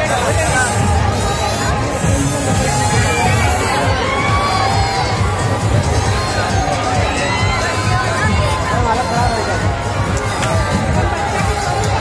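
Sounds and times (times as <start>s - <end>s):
riders screaming and shouting: 0.0s - 12.0s.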